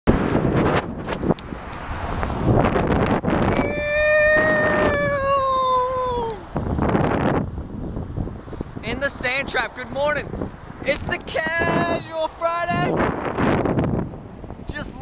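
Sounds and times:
wind buffeting microphone: 0.1s - 15.0s.

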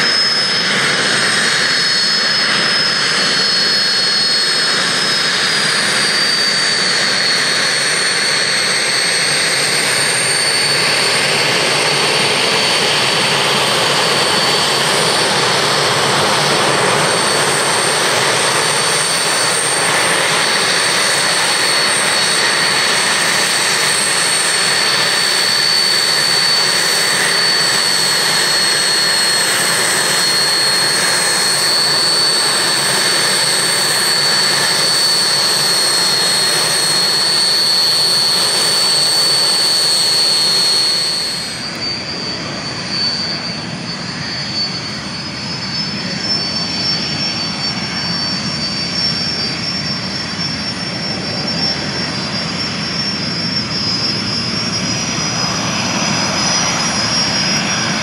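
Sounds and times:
jet engine whistling whine: 0.0s - 58.0s.

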